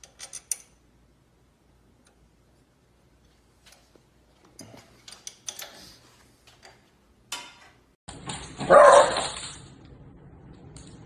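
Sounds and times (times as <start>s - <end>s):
small dog barking: 8.6s - 9.3s.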